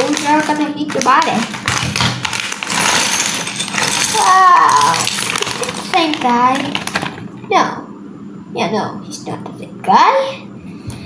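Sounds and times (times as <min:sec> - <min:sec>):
plastic bags crinkling: 0:00.0 - 0:07.3.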